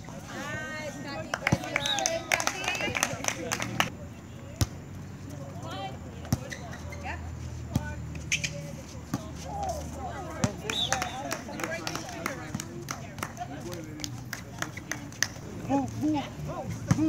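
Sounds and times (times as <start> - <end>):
voices around court: 0.0 - 17.0.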